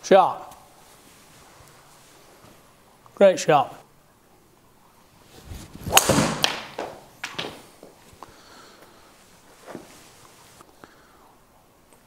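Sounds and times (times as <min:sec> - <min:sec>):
golf club swing whoosh: 0:05.3 - 0:06.8
club striking golf ball: 0:05.8 - 0:07.5
ball hitting screen: 0:05.8 - 0:07.6.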